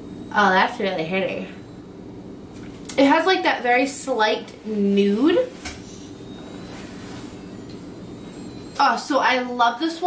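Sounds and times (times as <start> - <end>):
faint steady tones: 0.0 - 10.0
low background hum: 0.0 - 10.0.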